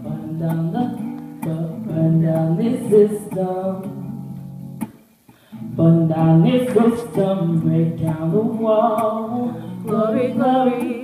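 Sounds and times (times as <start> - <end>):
woman singing: 0.0 - 4.1, 5.7 - 11.0
acoustic guitar strumming: 0.0 - 11.0.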